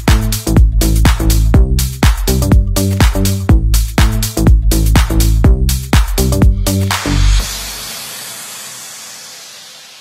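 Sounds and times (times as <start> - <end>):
hissing white noise: 7.2 - 10.0.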